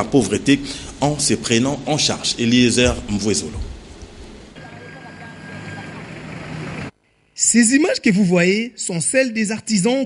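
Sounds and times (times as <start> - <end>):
vehicle traffic: 3.8 - 7.0.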